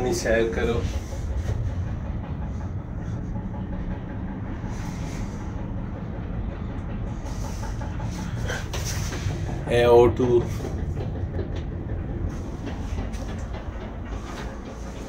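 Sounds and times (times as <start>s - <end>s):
cable car rumble: 0.0s - 15.0s.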